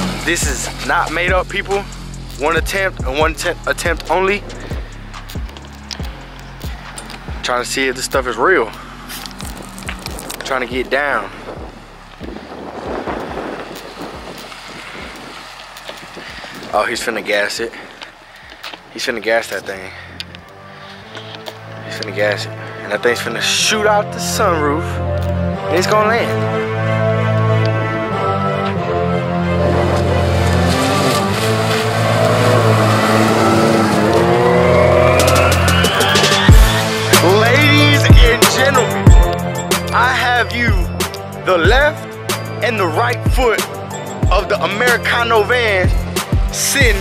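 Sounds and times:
background music with bass notes: 0:00.0 - 0:47.0
car driving past: 0:08.7 - 0:18.9, 0:26.3 - 0:37.2
wind buffeting microphone: 0:09.6 - 0:19.0
rising pitch sweep: 0:25.6 - 0:39.9.

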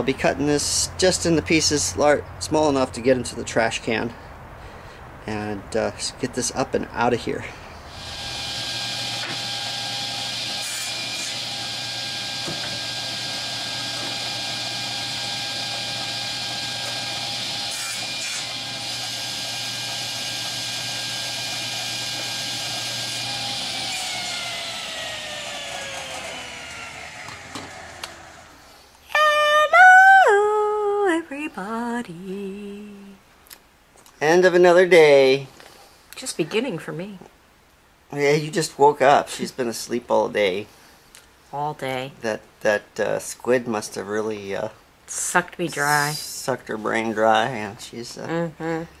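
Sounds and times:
saw blade spinning down: 0:07.9 - 0:28.7
table saw cutting wood: 0:07.9 - 0:28.7.

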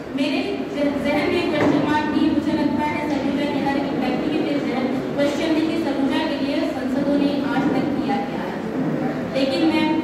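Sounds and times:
noisy room background: 0:00.0 - 0:10.0
woman talking into microphone: 0:00.1 - 0:10.0.

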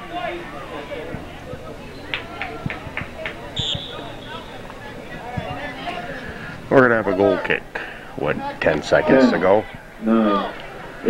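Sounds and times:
distant voices: 0:00.0 - 0:11.0
referee's whistle blast: 0:03.5 - 0:05.6.

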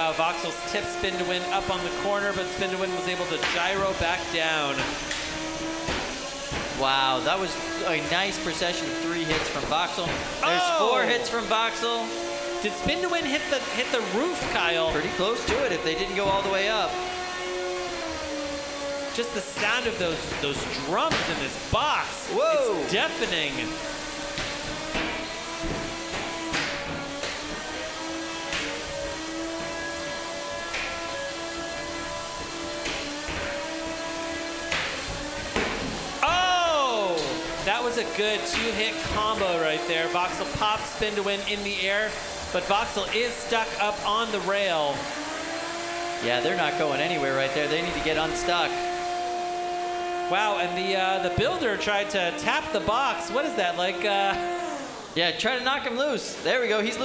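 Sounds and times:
spinning drum weapons whining: 0:00.1 - 0:18.1, 0:18.8 - 0:45.3.

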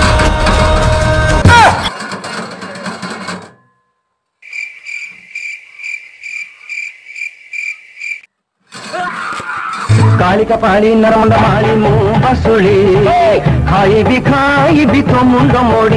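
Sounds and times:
music: 0:00.0 - 0:02.4, 0:09.9 - 0:15.9
cricket chirping: 0:04.4 - 0:08.3.

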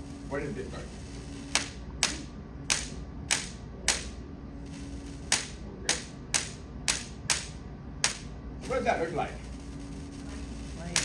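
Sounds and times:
electric sparks snapping: 0:00.0 - 0:11.0.

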